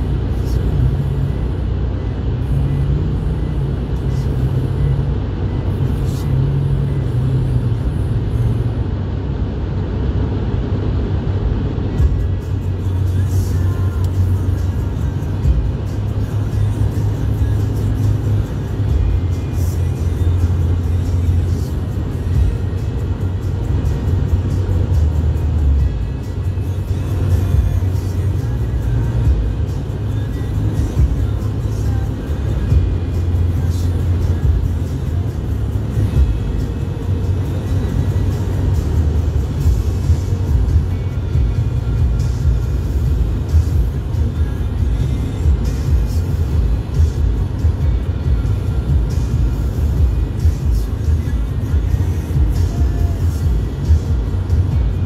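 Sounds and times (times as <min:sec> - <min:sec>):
music playing: 0:00.0 - 0:09.0, 0:11.7 - 0:55.0
car road and engine noise: 0:00.0 - 0:55.0.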